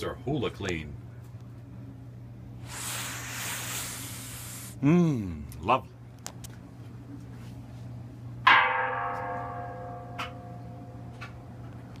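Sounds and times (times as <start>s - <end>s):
metallic strike ringing: 8.5s - 11.0s.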